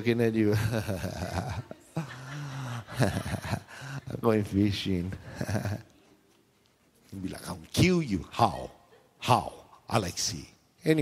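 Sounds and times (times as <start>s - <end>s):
man laughing: 0.5s - 4.2s, 5.2s - 5.9s.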